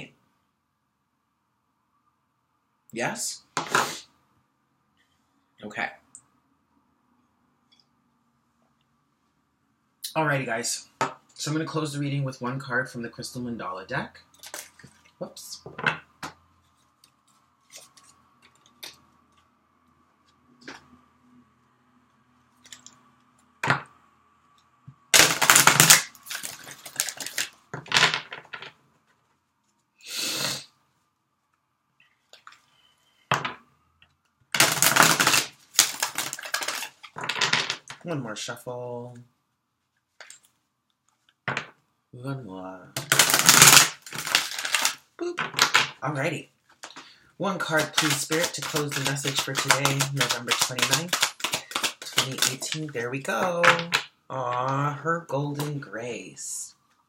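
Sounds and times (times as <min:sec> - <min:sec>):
cards shuffling: 0:17.0 - 0:19.5, 0:25.2 - 0:28.7, 0:34.6 - 0:38.0, 0:43.0 - 0:46.0, 0:46.8 - 0:53.0
cards clicking and tapping: 0:34.6 - 0:38.0, 0:47.6 - 0:52.9.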